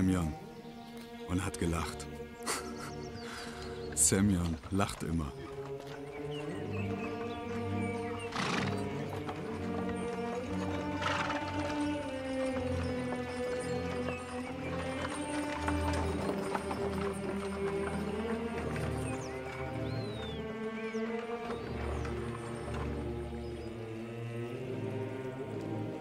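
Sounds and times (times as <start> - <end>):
film music with held notes: 0.0 - 26.0
horse hooves clopping on dirt: 3.0 - 26.0.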